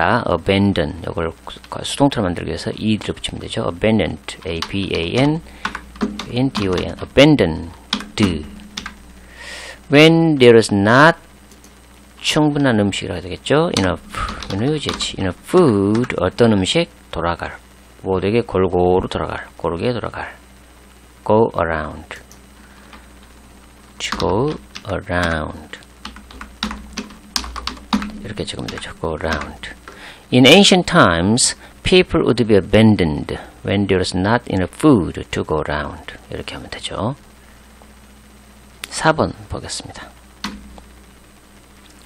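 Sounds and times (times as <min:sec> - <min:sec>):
computer keystrokes: 0:04.5 - 0:07.0, 0:07.9 - 0:09.0, 0:13.8 - 0:15.1, 0:26.0 - 0:29.6, 0:40.4 - 0:40.8.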